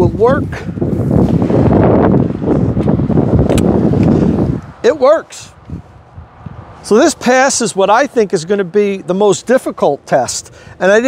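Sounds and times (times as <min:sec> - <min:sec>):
wind buffeting microphone: 0:00.0 - 0:09.1
sharp click: 0:03.5 - 0:03.7.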